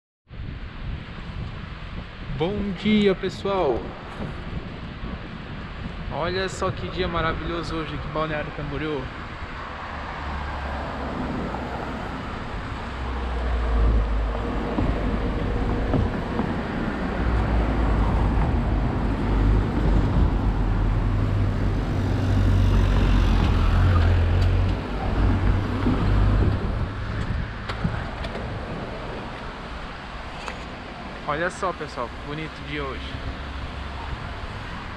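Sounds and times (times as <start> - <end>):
wind rumble on microphone: 0.3 - 34.9
cars passing: 3.8 - 34.9.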